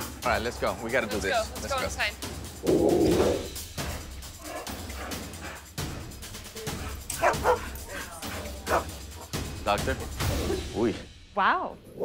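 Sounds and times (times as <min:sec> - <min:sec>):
dog barking: 0:06.8 - 0:09.3.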